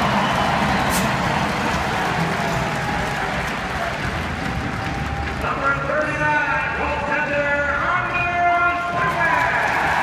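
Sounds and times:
crowd noise: 0.0 - 10.0
echoing announcer voice: 5.4 - 10.0.

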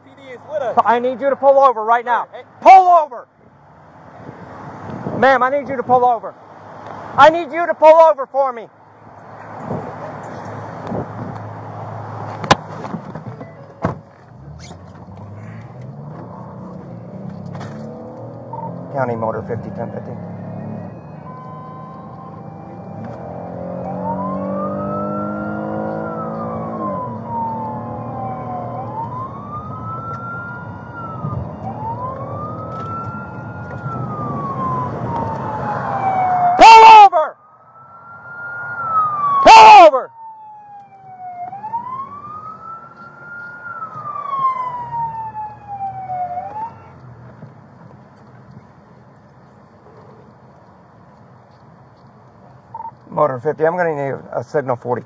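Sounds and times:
car engine and road noise: 0.0 - 55.0
loud siren blasts: 17.9 - 47.0
police siren wailing: 17.9 - 47.0.

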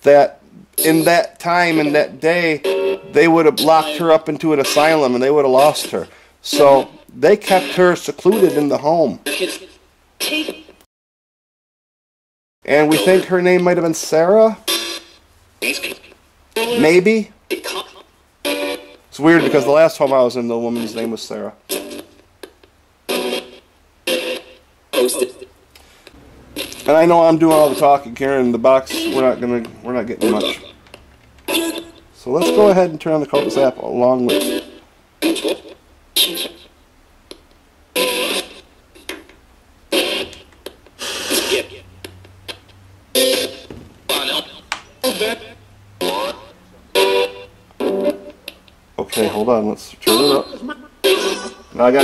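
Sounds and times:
low radio hiss: 0.0 - 10.8, 12.6 - 52.0
radio static: 26.5 - 30.8, 39.9 - 41.9, 43.2 - 48.2
radio sound snippet: 26.6 - 30.8, 31.6 - 34.6, 43.7 - 46.6, 49.0 - 52.0.

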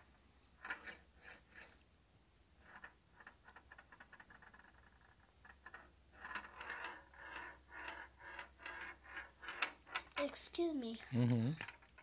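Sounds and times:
ball rolling in plastic maze: 0.0 - 1.9, 2.5 - 12.0.

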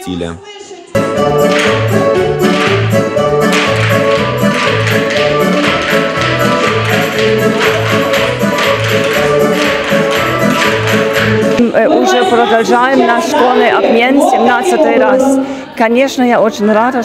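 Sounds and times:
folk percussion taps: 1.4 - 11.7.

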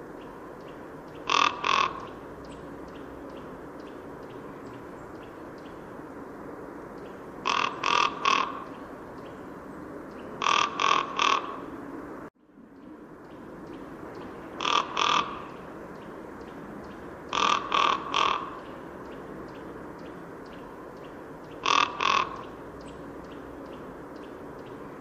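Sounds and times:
steady background hiss: 0.0 - 25.0
raven calls: 0.2 - 5.9, 7.0 - 9.5, 10.1 - 11.9, 13.3 - 25.0.

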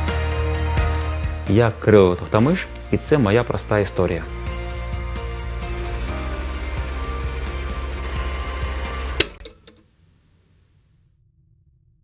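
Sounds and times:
background music: 0.0 - 9.8
film projector clatter: 5.5 - 9.8.

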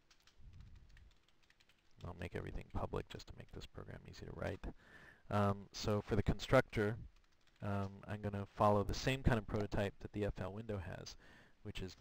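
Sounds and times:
faint keyboard typing: 0.0 - 12.0.

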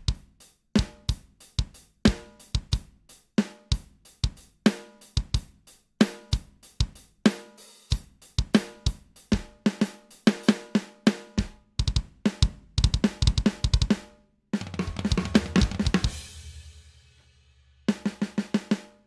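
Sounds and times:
snare drum hits: 14.6 - 16.4.

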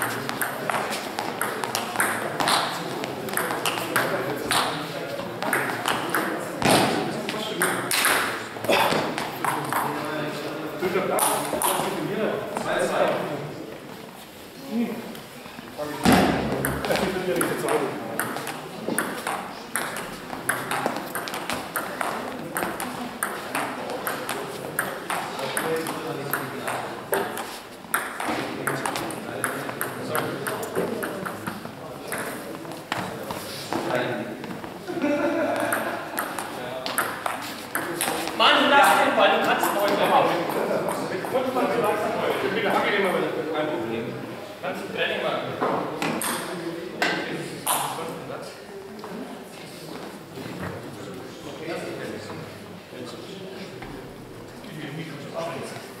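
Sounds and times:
table tennis ball clicking: 1.4 - 2.6, 17.4 - 32.4, 35.7 - 38.1
sharp loud knock: 16.0 - 16.6.

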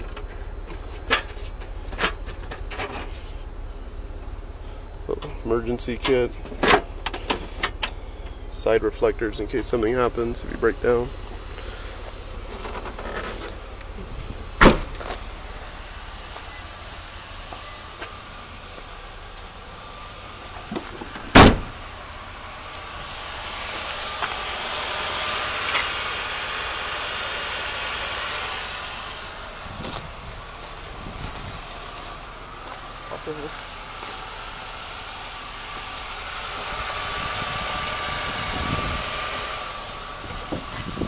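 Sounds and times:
vehicle noise: 0.0 - 41.0
loud door slams: 14.6 - 15.0, 21.1 - 21.8.

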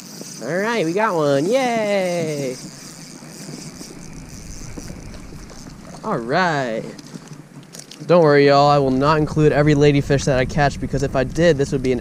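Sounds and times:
fishing reel clicking: 0.0 - 8.1
steady low rumble: 2.6 - 7.0, 8.5 - 12.0.

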